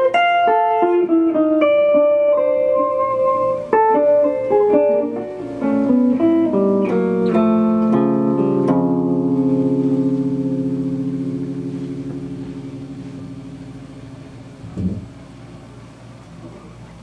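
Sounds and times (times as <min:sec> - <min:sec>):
electric guitar playing: 0:00.0 - 0:16.4
low thump: 0:14.7 - 0:15.1.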